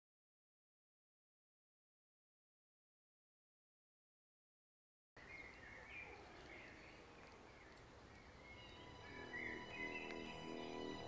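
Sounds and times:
birds chirping: 5.2s - 11.0s
soundtrack music with sustained tones: 8.4s - 11.0s.

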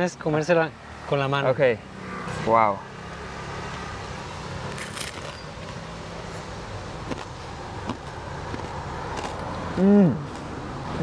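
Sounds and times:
bread crunching while chewing: 8.5s - 9.5s
person humming mmm: 9.8s - 10.3s.

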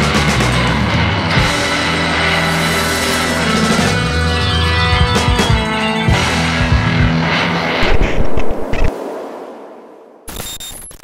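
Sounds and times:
intro music: 0.0s - 7.8s
rushing sound effect: 1.6s - 10.9s.

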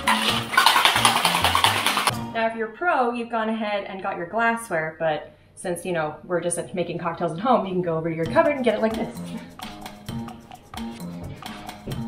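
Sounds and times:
ice rattling in cocktail shaker: 0.0s - 2.1s.

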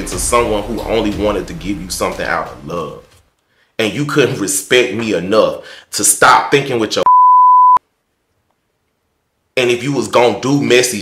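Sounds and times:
censor bleep: 7.0s - 7.8s.

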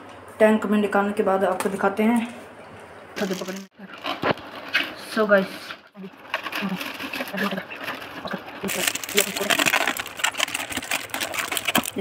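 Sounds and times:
plastic bag crinkling: 6.0s - 12.0s.

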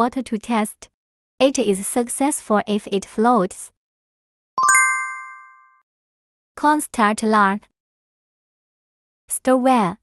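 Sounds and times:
bright chime: 4.6s - 5.8s.

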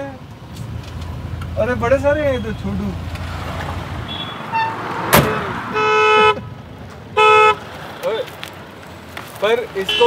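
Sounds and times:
vehicle horn honking: 4.1s - 7.6s
sharp thump: 5.0s - 5.6s.

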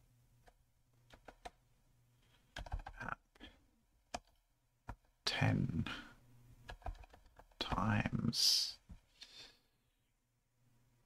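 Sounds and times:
computer keyboard typing: 1.1s - 1.6s, 2.5s - 3.1s, 4.1s - 5.1s, 6.6s - 8.0s.

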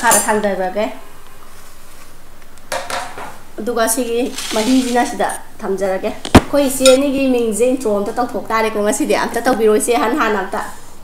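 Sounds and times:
woman talking: 3.6s - 10.7s.

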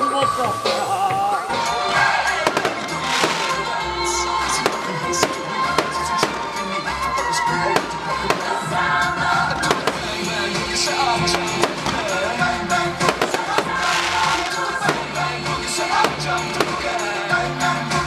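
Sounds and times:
background music: 0.0s - 18.0s
fireworks bangs and crackles: 1.4s - 18.0s.

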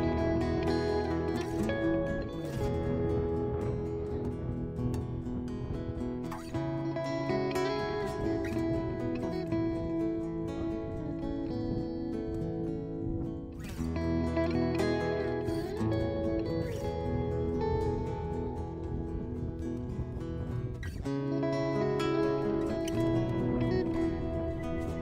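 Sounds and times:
background music with plucked strings: 0.0s - 25.0s.

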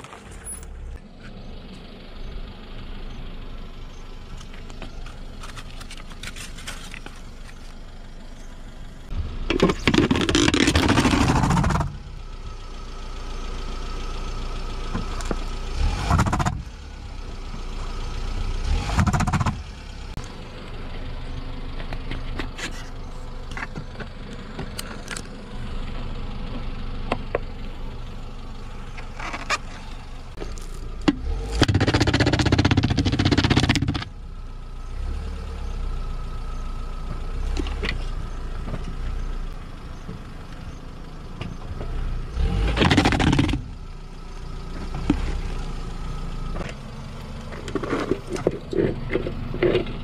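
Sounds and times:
car engine running: 0.0s - 50.0s.

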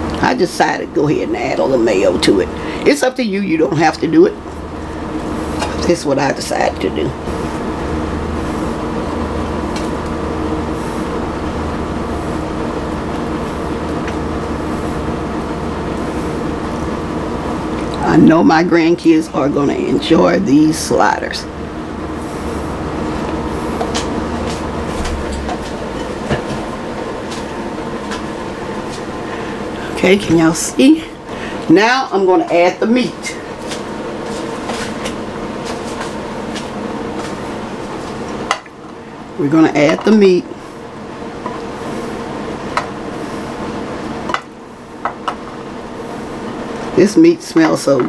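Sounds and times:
low hum: 0.0s - 45.1s.

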